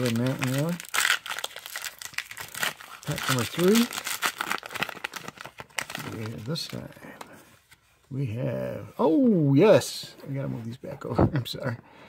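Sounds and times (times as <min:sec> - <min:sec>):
wrapper tearing: 0:00.0 - 0:06.9
wrapper crinkling: 0:00.0 - 0:07.0.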